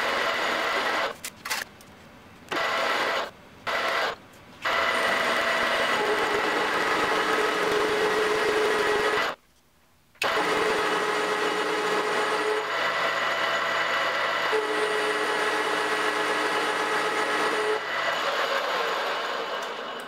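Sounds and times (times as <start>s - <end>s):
metal lathe cutting with whine: 2.6s - 9.4s, 10.2s - 20.0s.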